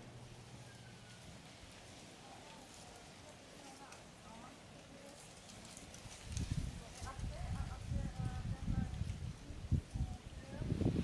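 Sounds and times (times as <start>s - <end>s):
wind buffeting microphone: 6.0s - 11.0s.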